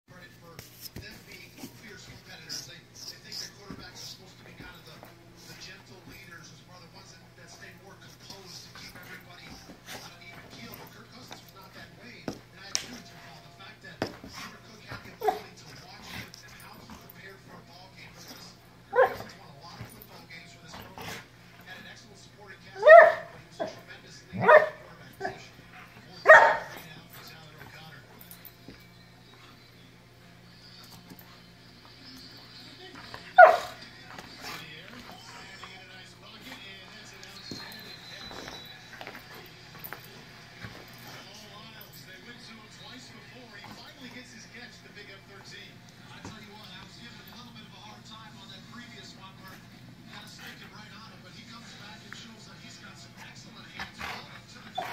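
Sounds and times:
low steady hum: 0.1 - 54.9
puppy barking: 18.9 - 19.3, 22.8 - 23.8, 24.4 - 25.4, 26.2 - 26.8, 33.4 - 33.8.

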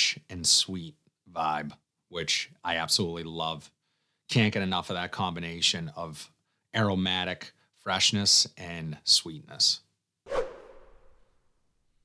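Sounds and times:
whoosh sound effect: 10.3 - 11.2.

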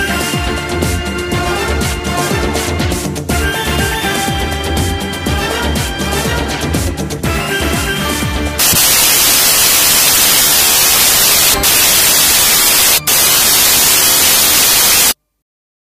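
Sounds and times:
electronic dance music: 8.6 - 15.2
loud static hiss: 8.6 - 15.2.

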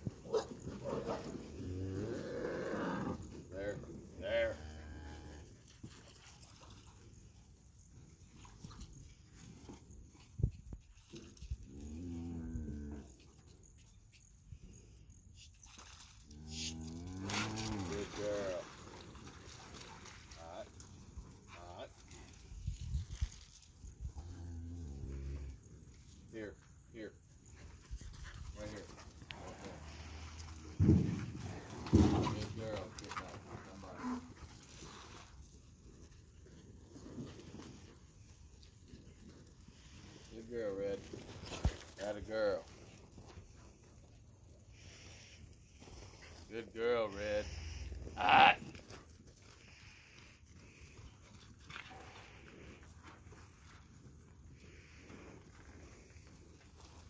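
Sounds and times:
cattle mooing: 47.8 - 48.7.

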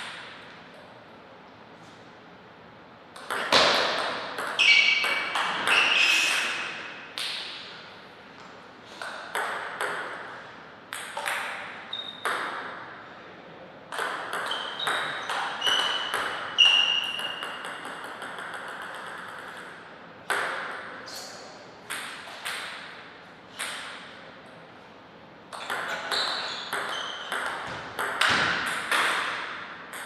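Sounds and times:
table tennis ball hits: 3.2 - 7.7, 9.0 - 12.9, 13.9 - 21.0, 21.8 - 23.0, 23.6 - 24.2, 25.5 - 30.0.

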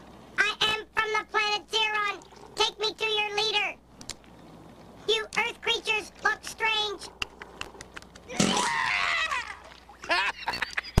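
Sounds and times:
squawky puppet voice: 0.4 - 3.8, 5.1 - 7.2.

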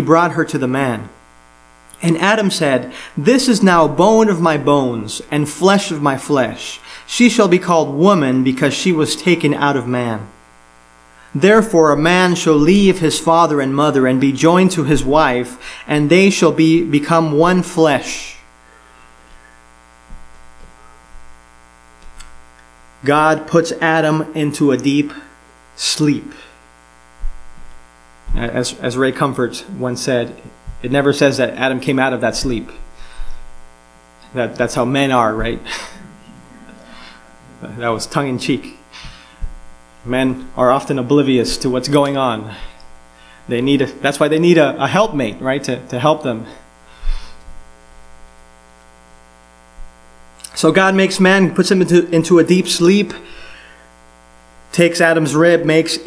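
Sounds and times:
electrical mains hum: 0.0 - 56.0
faint low bumps: 27.0 - 28.6, 30.5 - 31.0, 39.0 - 39.9
soft low thump: 27.2 - 28.4, 39.4 - 39.7.

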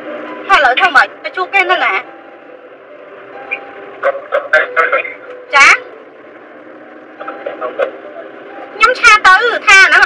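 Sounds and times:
woman speaking: 0.5 - 2.1, 5.5 - 5.9, 8.8 - 10.0.

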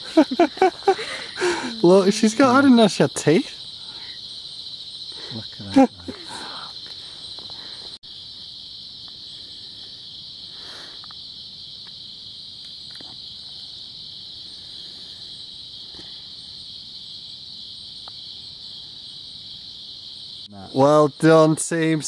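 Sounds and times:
insects droning: 0.0 - 22.0.

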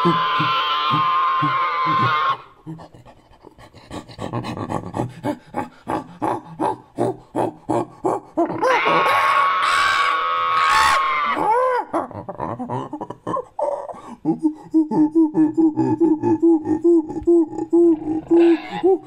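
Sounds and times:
high-pitched scream: 0.0 - 2.5, 8.6 - 11.5
high animal call: 0.0 - 2.6, 8.4 - 11.7, 17.9 - 19.0
ape-like panting hoots: 0.0 - 9.2, 13.6 - 19.0.

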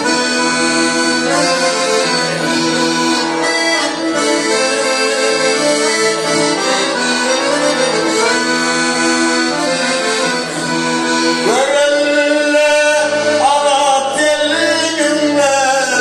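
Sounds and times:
accordion playing folk melody: 0.0 - 16.0
man singing: 11.4 - 16.0.

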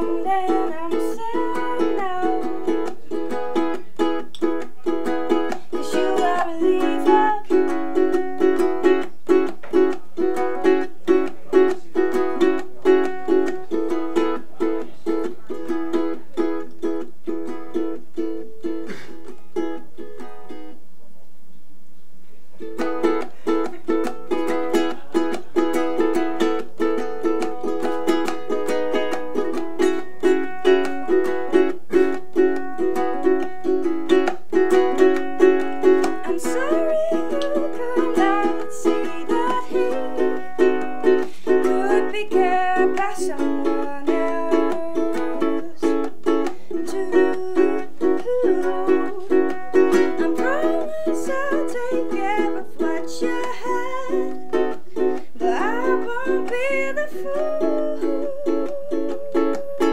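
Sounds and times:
woman singing: 0.0 - 3.8, 5.0 - 9.1, 34.2 - 59.9
ukulele strumming chords: 0.0 - 20.9, 22.6 - 59.9.

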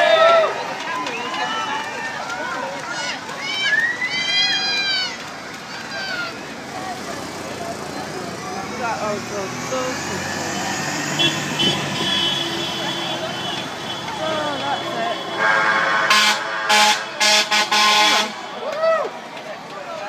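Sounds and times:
steady traffic noise: 0.0 - 20.0
voices: 0.0 - 20.0
vehicle horn honking: 11.2 - 18.5.

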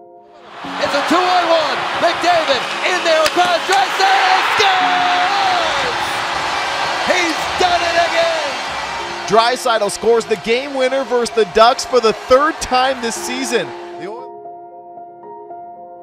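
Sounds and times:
arena crowd cheering: 0.4 - 14.2
hockey sticks and puck clacking: 1.9 - 4.8.

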